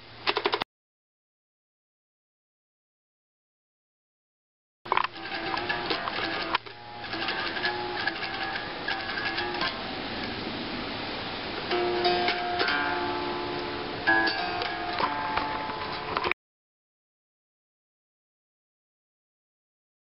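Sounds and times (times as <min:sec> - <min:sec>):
electric guitar playing: 0:04.9 - 0:16.3.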